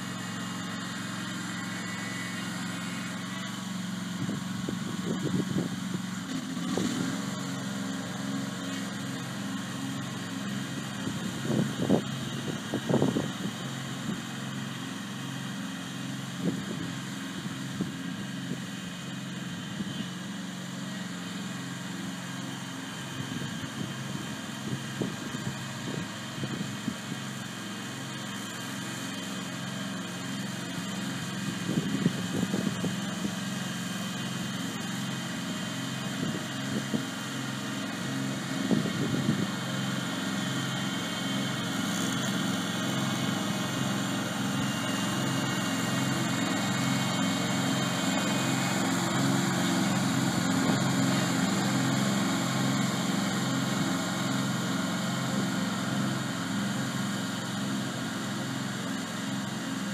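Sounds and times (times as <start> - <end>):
mower engine pulsing: 0.0 - 59.9.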